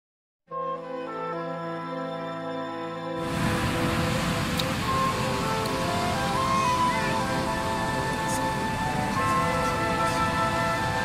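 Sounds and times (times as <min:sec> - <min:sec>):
background music: 0:00.5 - 0:11.0
ocean surf breaking: 0:03.2 - 0:11.0.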